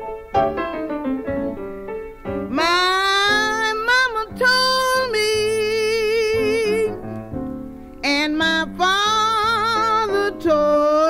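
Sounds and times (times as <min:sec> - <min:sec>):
piano chords: 0:00.0 - 0:11.0
woman singing blues: 0:02.5 - 0:07.0, 0:08.0 - 0:11.0.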